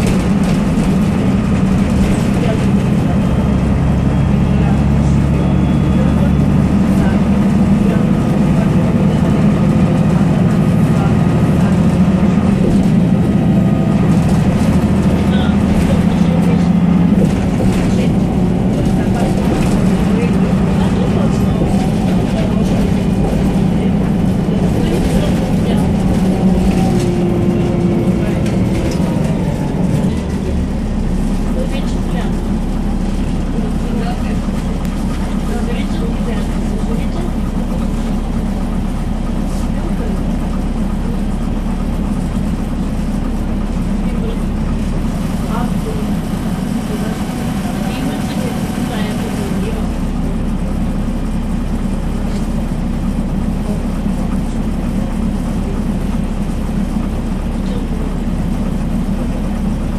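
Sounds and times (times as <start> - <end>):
bus diesel engine drone: 0.0 - 59.9
road noise: 0.0 - 59.9.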